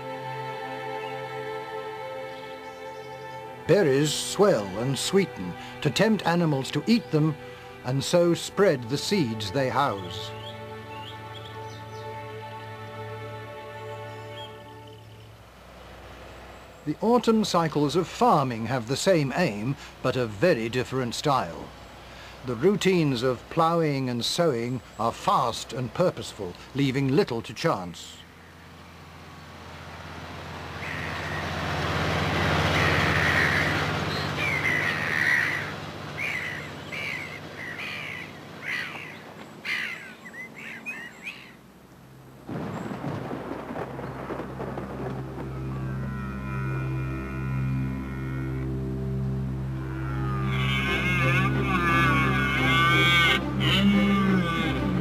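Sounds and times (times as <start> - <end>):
music with long held notes: 0.0 - 15.4, 44.2 - 55.0
gulls calling: 0.9 - 15.4, 16.6 - 26.4, 30.6 - 41.7, 42.5 - 55.0
tractor engine running: 28.3 - 39.6.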